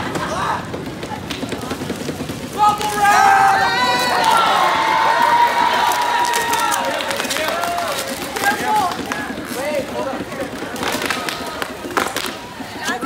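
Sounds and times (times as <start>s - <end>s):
excited young voices: 2.5s - 13.0s.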